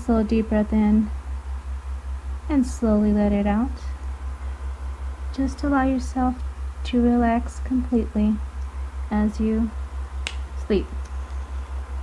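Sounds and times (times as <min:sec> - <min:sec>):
woman speaking: 0:00.0 - 0:01.2, 0:02.5 - 0:04.0, 0:05.4 - 0:08.4, 0:09.1 - 0:09.8, 0:10.6 - 0:11.0
low pulsing hum: 0:00.0 - 0:12.0
finger snap: 0:10.2 - 0:11.4.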